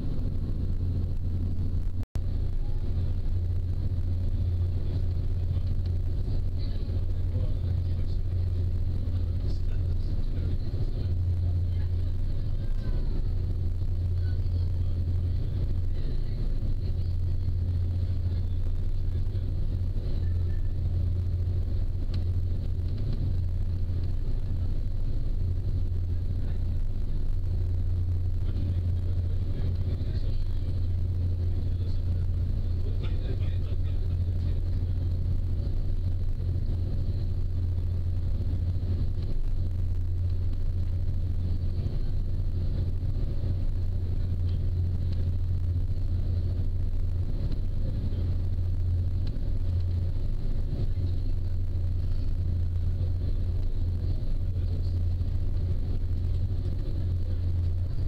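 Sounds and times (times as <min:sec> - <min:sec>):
ferry engines droning: 0:00.0 - 0:58.0
water and wind noise: 0:00.0 - 0:58.0.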